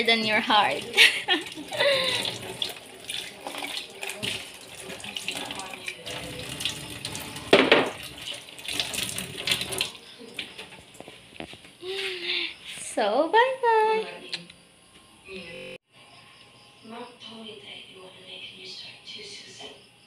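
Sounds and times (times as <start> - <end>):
tap running water into sink: 0.3 - 10.9
knock: 7.5 - 8.0.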